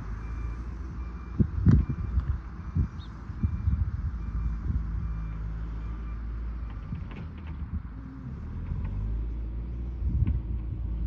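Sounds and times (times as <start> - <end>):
wind buffeting the microphone: 1.2 - 5.3, 6.8 - 8.0, 9.8 - 11.0.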